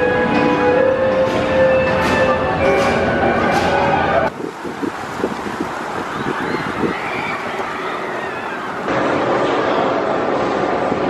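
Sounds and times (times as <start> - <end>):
roller coaster rumbling on track: 0.0 - 11.0
wind buffeting microphone: 4.3 - 11.0.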